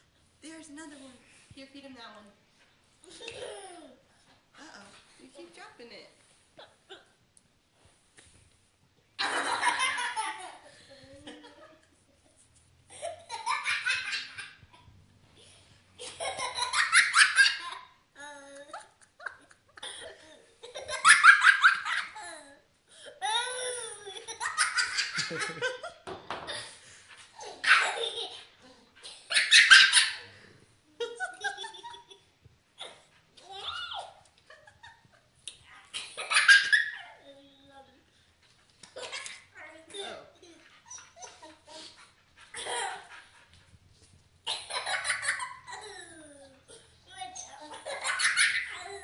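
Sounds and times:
boy laughing hysterically: 9.2s - 11.8s, 16.0s - 17.9s, 18.6s - 22.6s, 23.2s - 26.8s, 31.0s - 32.2s, 36.0s - 37.2s, 42.5s - 43.2s, 44.6s - 46.3s, 47.7s - 49.0s
child belly laughing: 23.2s - 26.8s.

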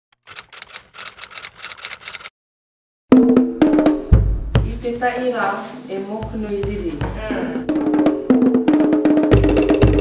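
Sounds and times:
typewriter key clacks: 0.2s - 2.3s.

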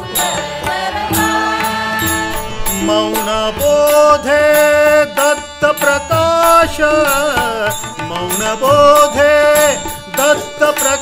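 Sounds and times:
harmonium melody: 0.0s - 11.0s
person singing: 0.0s - 11.0s
tabla rhythm: 0.0s - 11.0s.

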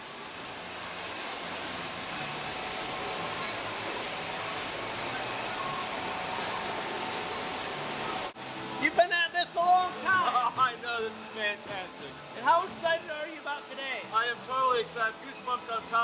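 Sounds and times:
machine hiss: 0.0s - 8.8s.

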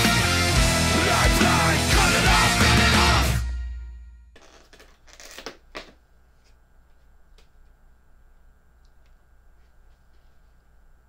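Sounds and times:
heavy rock music: 0.0s - 3.7s
faint steady hum: 5.6s - 11.0s
rustling handling noises: 9.0s - 11.0s.

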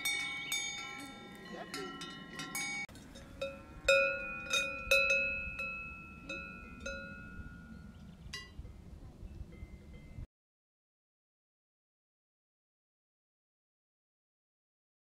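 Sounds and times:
cowbells clanking: 0.0s - 8.8s, 9.5s - 10.3s.

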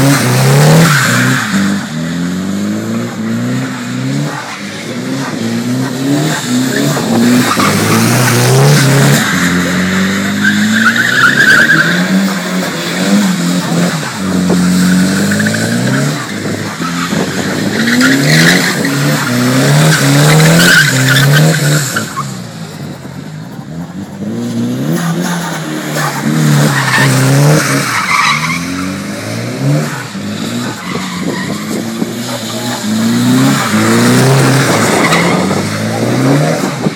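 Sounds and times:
car engine revving: 0.0s - 36.9s
tyre squeal: 6.7s - 12.3s.

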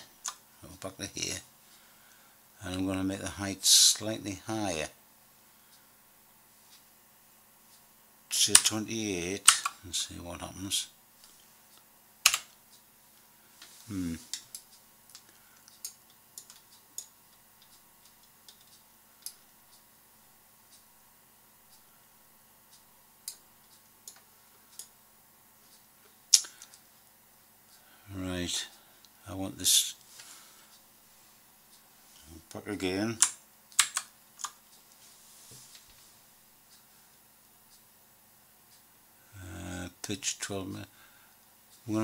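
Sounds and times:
computer mouse and keyboard clicks: 12.2s - 12.5s, 14.3s - 19.4s, 33.2s - 34.6s
keyboard key clicks: 12.2s - 12.5s, 33.2s - 34.6s.

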